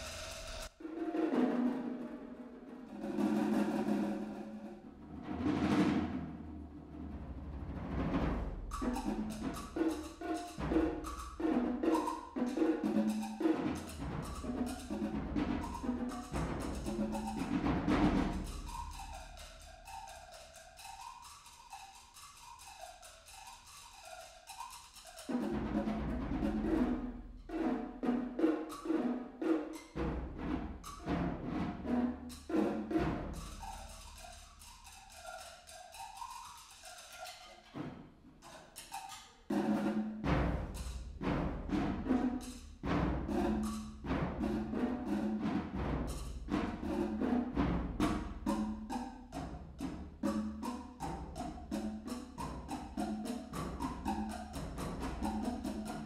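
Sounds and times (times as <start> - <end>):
fast conga drumming: 0.0 - 6.4, 7.0 - 22.6, 24.6 - 37.4, 39.5 - 56.0.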